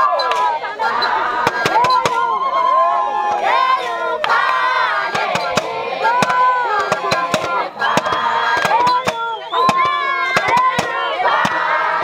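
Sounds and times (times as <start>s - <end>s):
women singing in unison: 0.0s - 12.0s
sharp hand claps: 0.3s - 0.5s.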